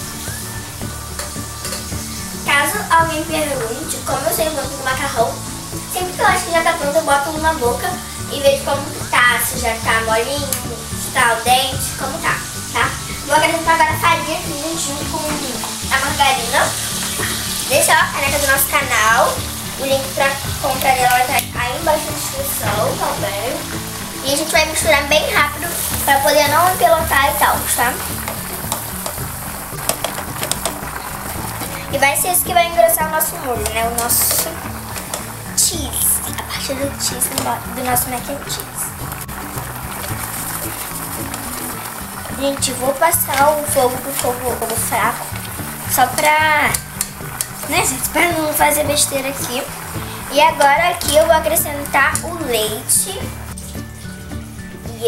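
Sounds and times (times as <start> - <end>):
background music with steady beat: 0.0 - 55.0
roux sizzling in saucepan: 0.0 - 55.0
spatula scraping a pan: 15.3 - 35.4, 36.2 - 52.8.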